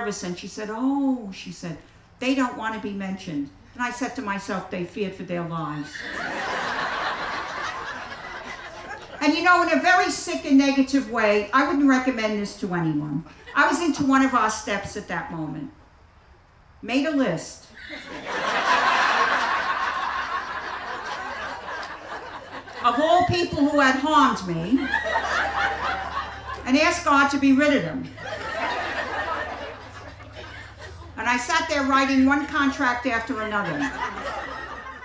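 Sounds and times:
audience laughing: 5.9s - 9.7s, 17.8s - 23.2s, 24.6s - 31.5s, 32.4s - 35.0s.

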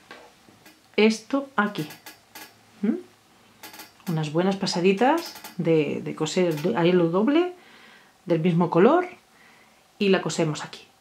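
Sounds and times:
metal ring clinking: 1.8s - 2.6s, 3.6s - 4.2s, 5.1s - 5.6s
person humming: 2.8s - 3.1s.

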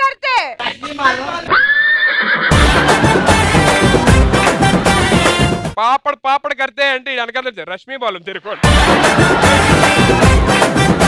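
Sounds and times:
background music: 2.5s - 5.8s, 8.5s - 11.0s.

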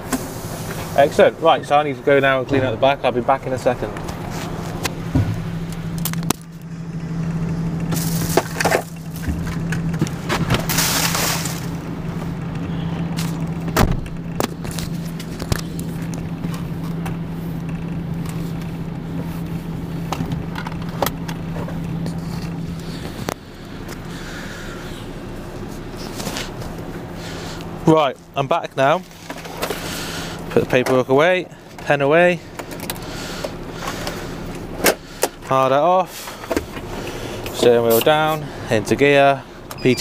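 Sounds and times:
diesel engine idling: 0.0s - 40.0s
knocks and clunks: 3.9s - 6.5s, 13.3s - 15.7s.

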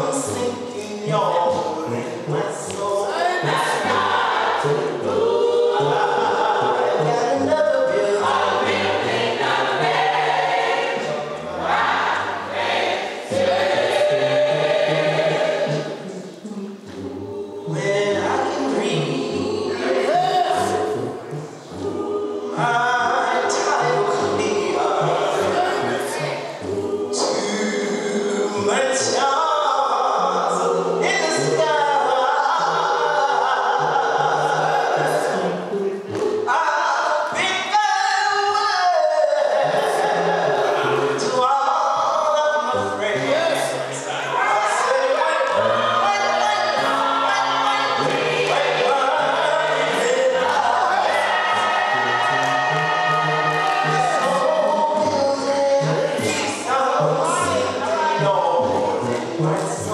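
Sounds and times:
bass line: 0.0s - 29.2s, 42.0s - 59.9s
voices singing along: 0.0s - 59.9s.

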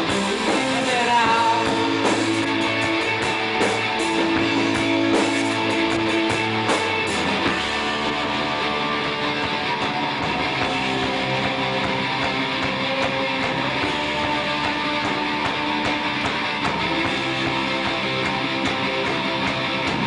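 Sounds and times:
drums and cymbals: 0.0s - 20.0s
electric guitars: 0.0s - 20.0s.

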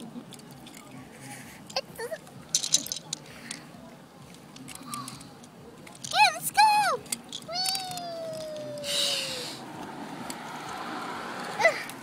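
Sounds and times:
plastic toys clicking: 0.0s - 1.0s, 1.6s - 8.9s.

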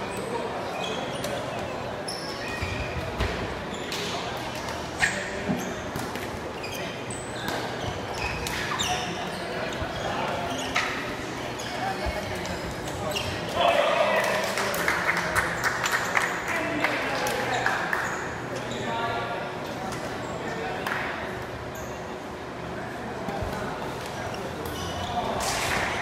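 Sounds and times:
shoes squeaking on court floor: 0.0s - 13.6s, 21.4s - 22.2s, 23.2s - 26.0s
players' voices: 0.0s - 26.0s.

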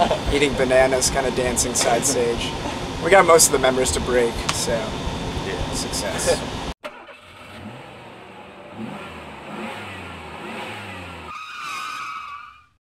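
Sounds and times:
vehicle engine revving: 0.2s - 11.4s.

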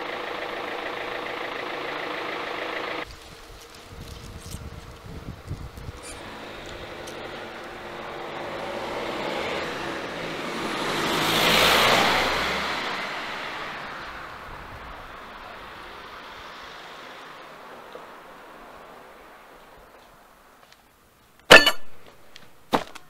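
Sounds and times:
car driving past: 5.9s - 19.8s.

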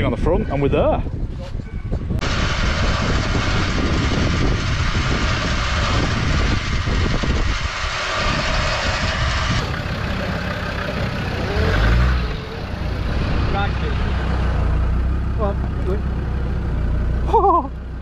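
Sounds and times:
electric winch running: 2.2s - 13.1s
car engine idling: 2.2s - 18.0s.

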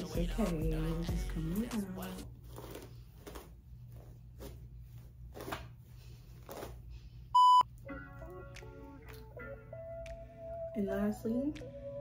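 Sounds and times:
music: 0.0s - 2.3s, 7.8s - 12.0s
electronic censor bleep: 7.4s - 7.7s.

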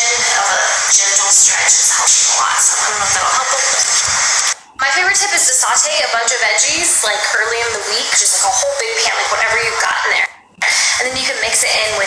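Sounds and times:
background music: 0.0s - 12.0s
woman speaking: 0.0s - 12.0s.

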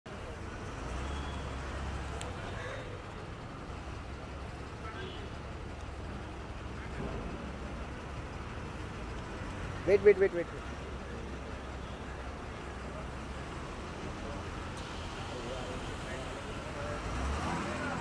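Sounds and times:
faint voices: 0.1s - 8.3s, 9.6s - 18.0s
low traffic rumble: 0.1s - 18.0s.

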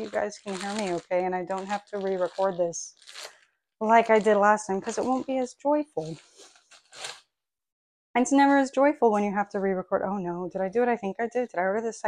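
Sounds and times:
clothing rustling: 0.0s - 3.4s, 4.0s - 7.3s.

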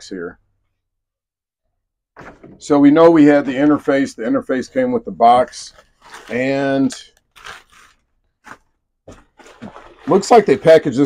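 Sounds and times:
tissue paper rustling: 5.4s - 10.9s.

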